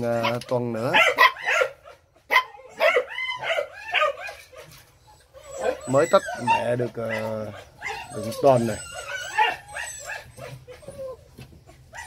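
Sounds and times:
puppies yipping and whining: 0.0 - 12.0.

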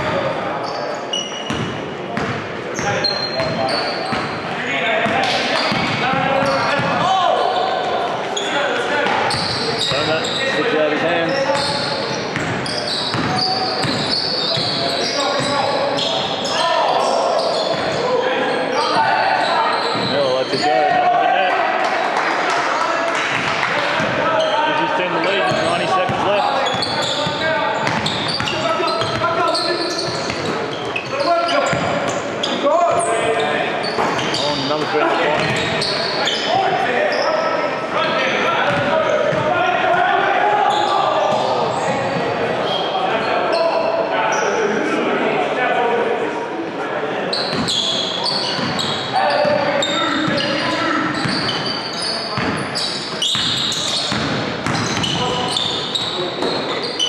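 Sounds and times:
voices calling out: 2.8 - 45.0.

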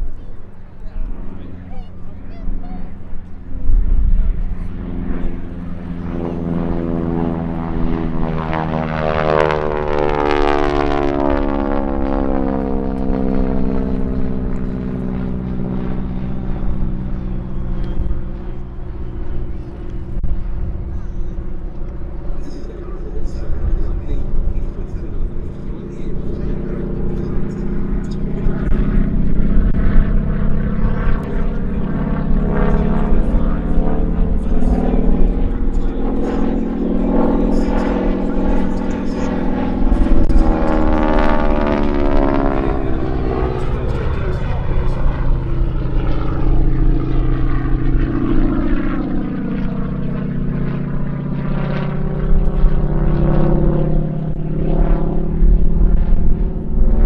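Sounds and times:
propeller plane engine: 0.0 - 57.0.

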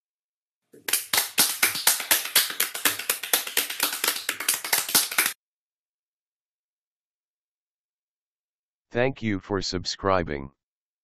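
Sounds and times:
hands clapping quickly: 0.8 - 5.4.

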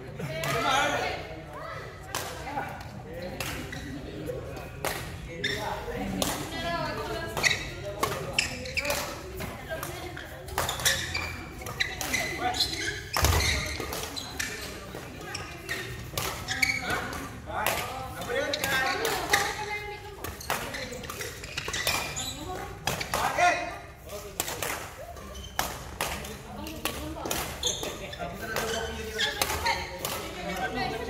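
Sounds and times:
racket hitting shuttlecock: 7.3 - 9.5.

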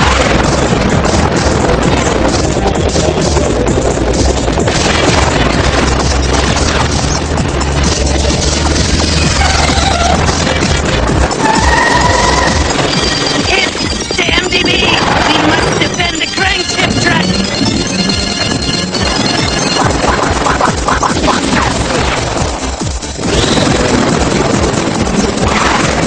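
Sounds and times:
blasting and crashing effects: 0.0 - 26.0
loud action music: 0.0 - 26.0
gunfire: 4.6 - 11.1, 15.0 - 26.0
whistling electronic tones: 11.4 - 20.3, 23.3 - 23.8.

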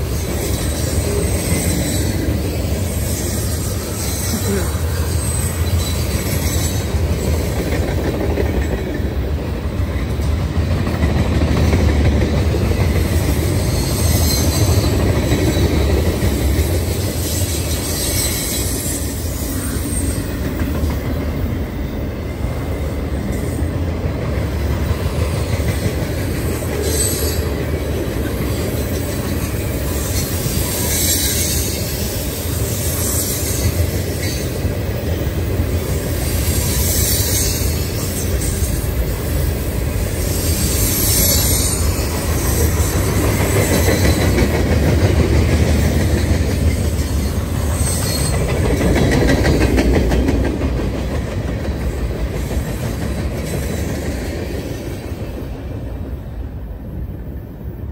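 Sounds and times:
freight train wheels rumbling: 0.0 - 57.9.

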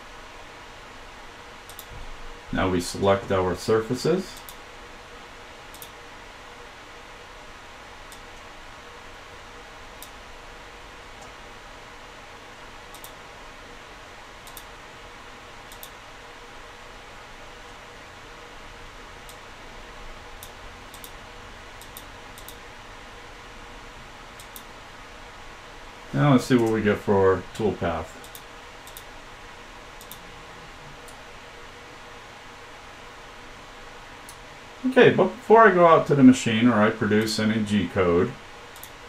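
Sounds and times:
room tone hiss: 0.0 - 39.0
computer mouse clicking: 1.6 - 1.9, 5.7 - 6.0, 12.9 - 13.2, 14.4 - 14.7, 15.7 - 16.0, 20.4 - 21.2, 21.8 - 22.6, 24.4 - 24.7, 28.2 - 29.1, 30.0 - 30.2, 38.7 - 39.0.

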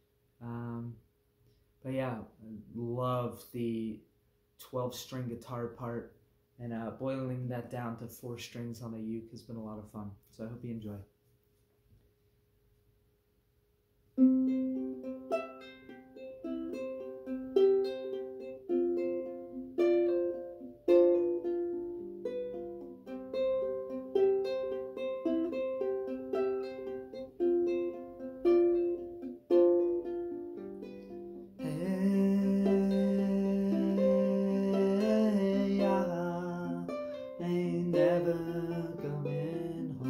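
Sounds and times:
ukulele fingerpicking: 14.2 - 40.0
man singing: 31.6 - 40.0.

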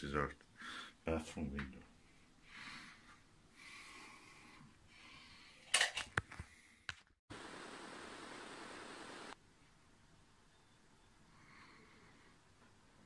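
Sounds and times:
steady hiss: 7.3 - 9.4.

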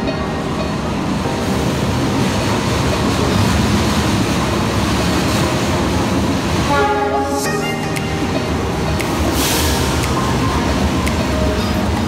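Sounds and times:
train rolling past: 0.0 - 12.0.

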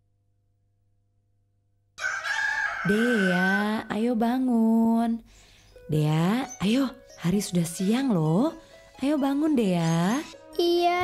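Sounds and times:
rooster crowing: 2.0 - 3.8.

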